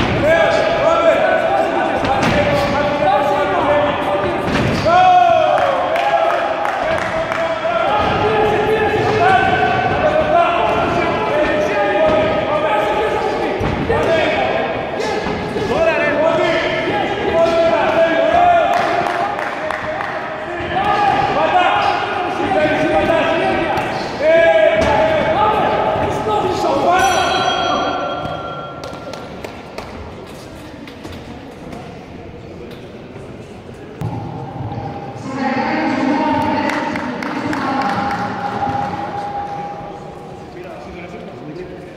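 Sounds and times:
voices shouting in a hall: 0:00.0 - 0:30.2, 0:33.4 - 0:41.9.

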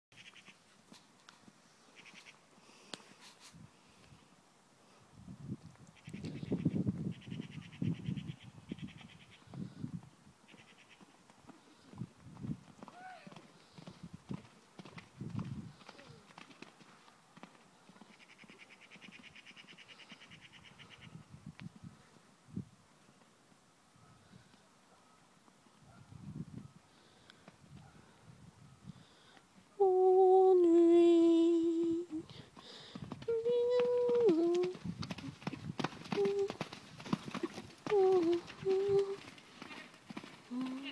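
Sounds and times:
pony hoofbeats on sand: 0:11.3 - 0:18.1, 0:32.6 - 0:40.9
person holding long vowel sounds: 0:29.8 - 0:32.3, 0:37.9 - 0:39.2.

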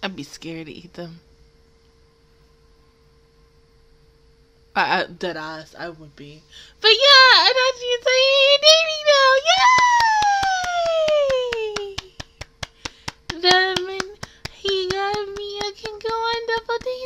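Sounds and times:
hands clapping quickly: 0:09.5 - 0:17.0.

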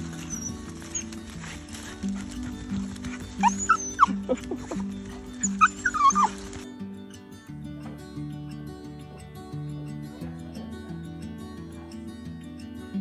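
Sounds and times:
dog whining: 0:00.0 - 0:02.0, 0:03.0 - 0:06.5
background music with sustained notes: 0:00.0 - 0:13.0.

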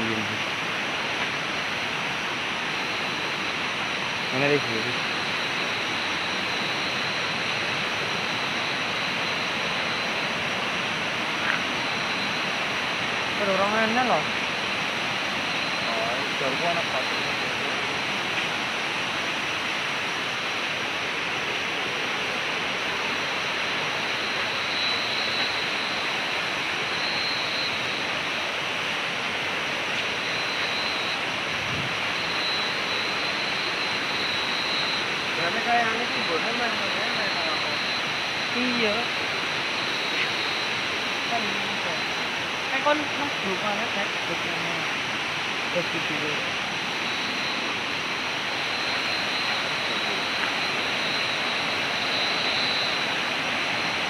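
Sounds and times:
river water rushing: 0:00.0 - 0:54.0
thin high whine: 0:00.0 - 0:54.0.

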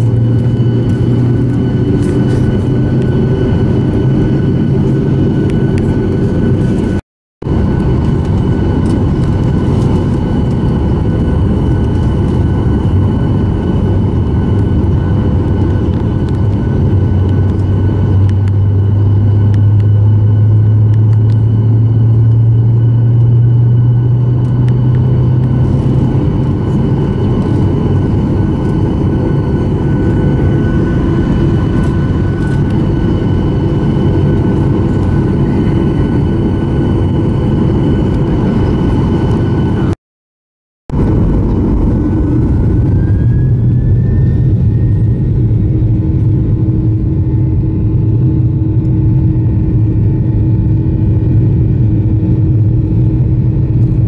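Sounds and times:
airliner engines rumbling in cabin: 0:00.0 - 0:40.0, 0:40.9 - 0:54.0.

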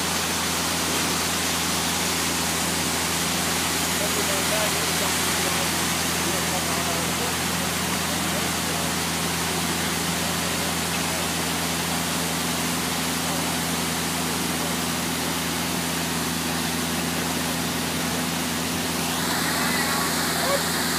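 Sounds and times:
heavy machinery engines droning: 0:14.4 - 0:20.9.

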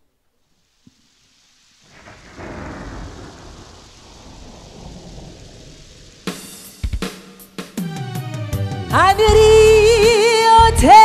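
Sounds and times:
rain hiss: 0:00.0 - 0:11.0
thunder rumble: 0:01.2 - 0:10.1
drum and cymbal hits: 0:02.0 - 0:10.8.

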